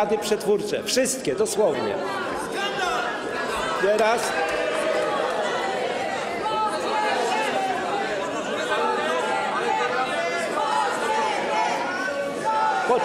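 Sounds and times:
many voices talking and calling out: 0:00.0 - 0:13.0.

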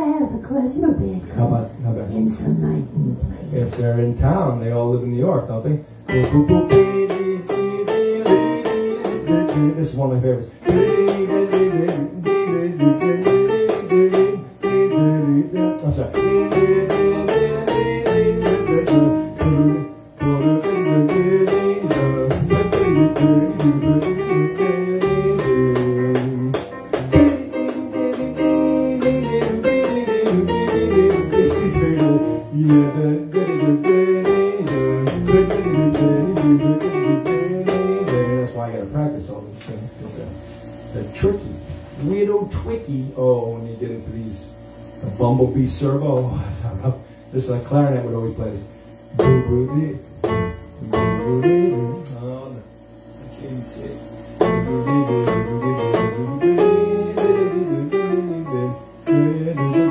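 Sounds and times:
electronic keyboard tune: 0:10.7 - 0:38.5, 0:49.2 - 0:52.3, 0:54.3 - 0:59.9.

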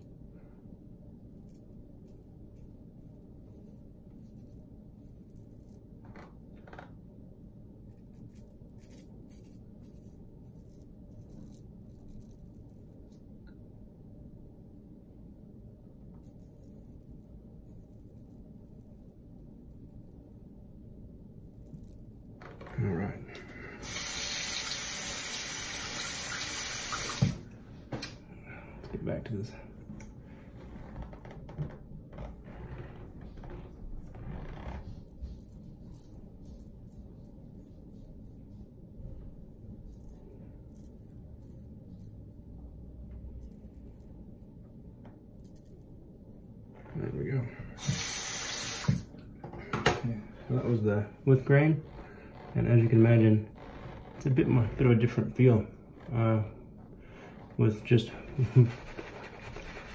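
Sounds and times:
low room hum: 0:00.0 - 0:59.9
tap running into sink: 0:24.5 - 0:27.4, 0:47.8 - 0:49.0.

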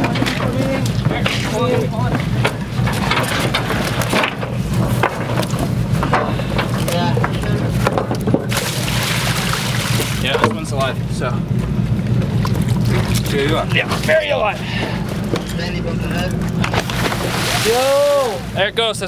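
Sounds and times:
ship engine drone: 0:00.0 - 0:19.0
water poured from bucket: 0:17.0 - 0:18.3.

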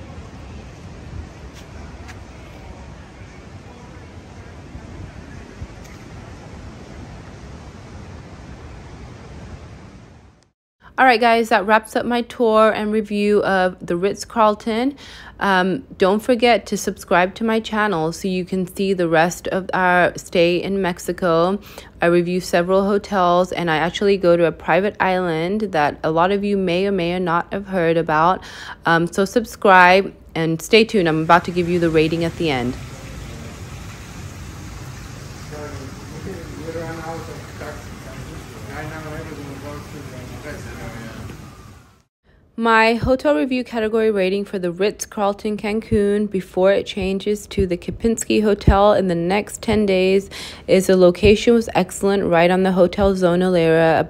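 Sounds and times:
sea surf: 0:00.0 - 0:10.2, 0:31.1 - 0:42.0
wind on microphone: 0:00.0 - 0:10.3
wind: 0:00.0 - 0:11.0, 0:12.0 - 0:54.0
outdoor background hiss: 0:00.0 - 0:54.0.

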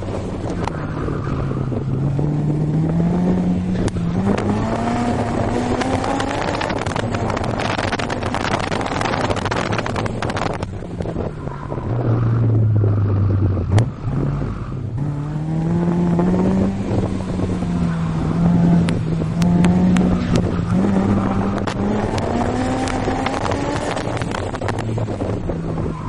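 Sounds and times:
car engine revving: 0:00.0 - 0:26.0
road and wind noise: 0:00.0 - 0:26.0.

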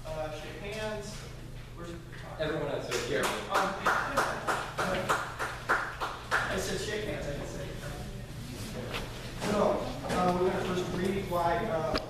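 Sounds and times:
people clapping: 0:02.8 - 0:07.0.

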